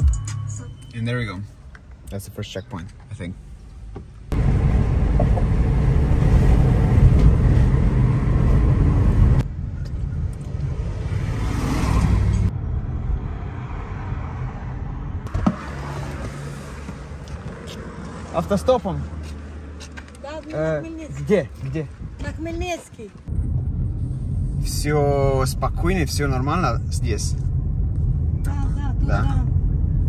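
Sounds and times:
car engine and road rumble: 0.0 - 30.0.

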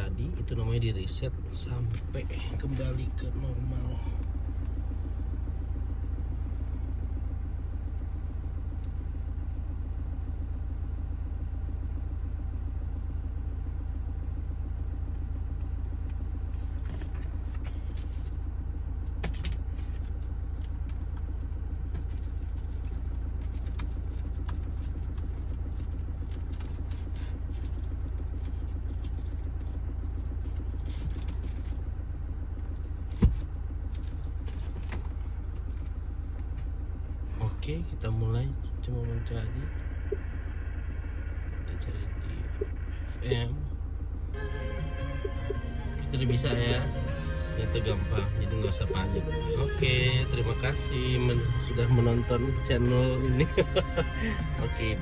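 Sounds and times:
engine idling rumble: 0.0 - 55.0.

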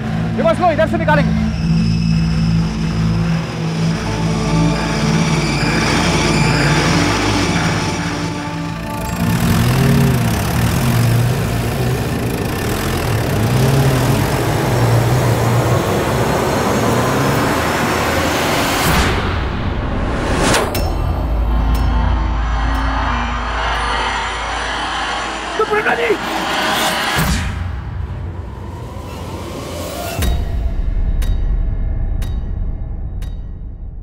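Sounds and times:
car engine revving: 0.0 - 30.4
background music: 0.0 - 34.0.

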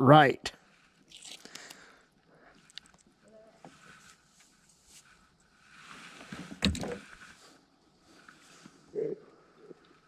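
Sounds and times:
soft handling scrapes: 0.6 - 1.1, 2.5 - 8.9.

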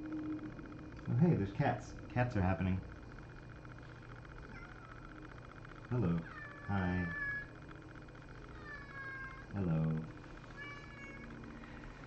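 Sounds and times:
cat meowing: 4.5 - 5.2, 6.1 - 7.6, 8.5 - 9.5, 10.6 - 11.4.

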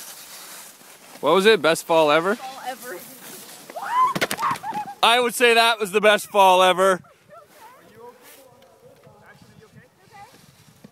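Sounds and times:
skiers colliding clatter: 0.0 - 6.2.

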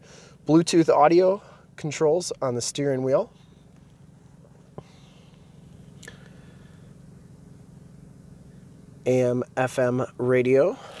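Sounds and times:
low car cabin hum: 0.0 - 11.0.

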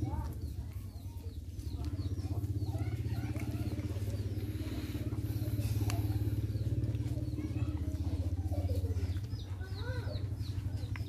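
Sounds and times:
small engine running: 0.0 - 11.0.

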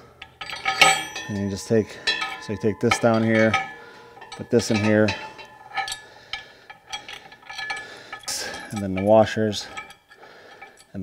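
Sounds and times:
metallic clinks of bolt on bracket: 0.0 - 11.0.

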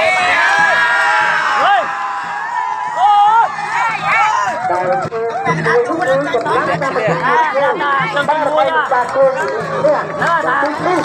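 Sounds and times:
long rising and falling shouts: 0.0 - 4.6
crowd shouting and cheering: 0.0 - 11.0.

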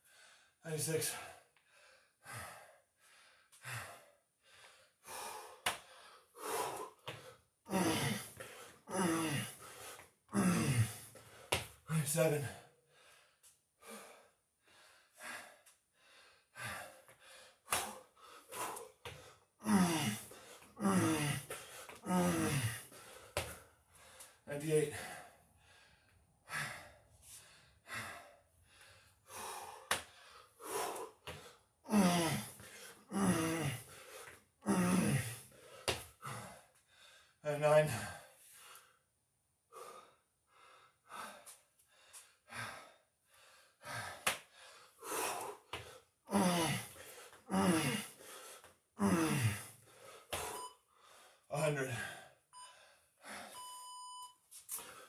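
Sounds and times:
man breathing hard: 0.0 - 39.1, 39.7 - 53.7, 54.7 - 55.0.

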